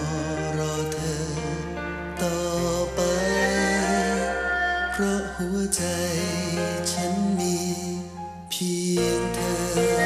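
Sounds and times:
slow instrumental song: 0:00.0 - 0:10.0.

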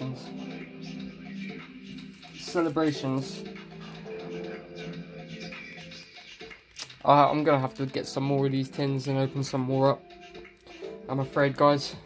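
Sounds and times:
soft sustained background music: 0:00.0 - 0:12.0.

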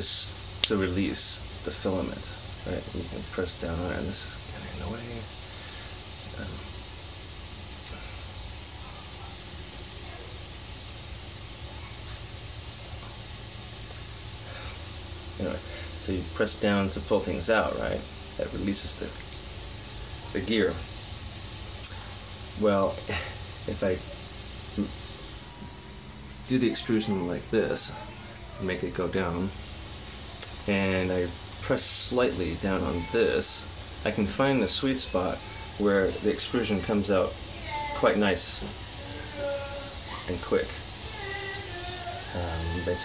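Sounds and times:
cooling fans whirring: 0:00.0 - 0:43.0
faint high whine: 0:00.0 - 0:43.0.

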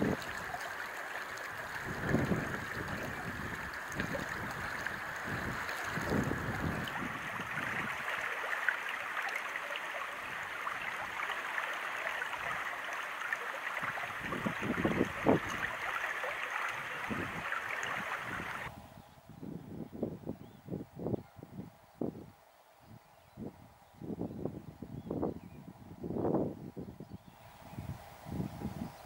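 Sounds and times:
wind buffeting microphone: 0:00.0 - 0:00.6, 0:01.5 - 0:08.2, 0:13.8 - 0:15.9, 0:16.7 - 0:29.0
stream running over stones: 0:00.0 - 0:18.7.

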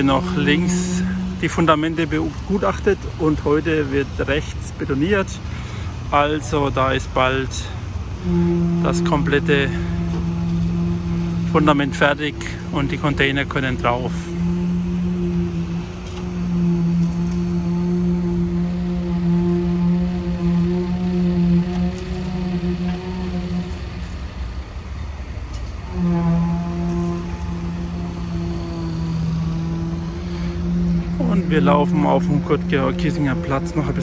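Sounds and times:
concrete vibrator humming: 0:00.0 - 0:34.0.

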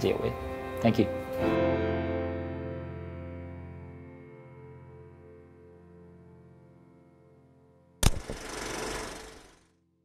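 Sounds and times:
music: 0:00.0 - 0:08.1
sudden hit: 0:08.0 - 0:09.5
rushing noise: 0:08.0 - 0:09.6.

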